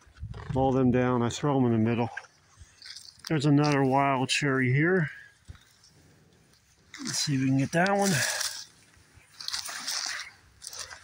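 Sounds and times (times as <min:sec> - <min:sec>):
dry brush and leaves crunching: 0:02.6 - 0:11.0.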